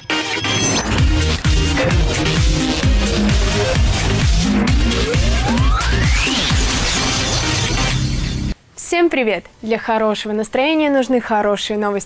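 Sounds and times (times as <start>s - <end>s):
electronic music jingle: 0.0s - 8.6s
noisy crash-like effect: 0.5s - 8.6s.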